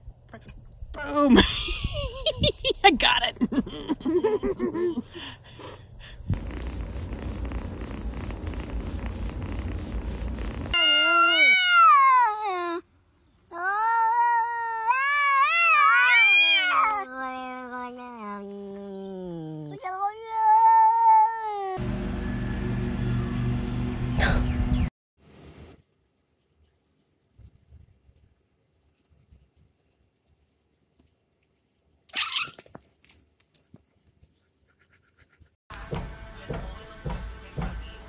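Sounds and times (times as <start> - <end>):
cat meowing loudly: 10.8 - 12.4, 14.1 - 17.0, 32.1 - 32.6.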